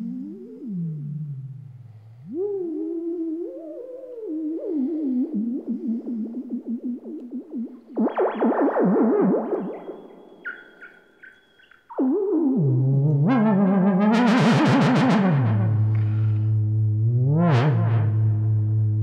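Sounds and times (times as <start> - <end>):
buzzy synthesizer tone swooping: 2.4 - 19.0.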